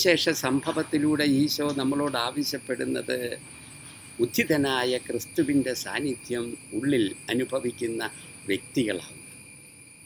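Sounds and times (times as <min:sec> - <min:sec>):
man speaking: 0:00.0 - 0:03.4, 0:04.2 - 0:09.2
insects chirring: 0:00.0 - 0:10.0.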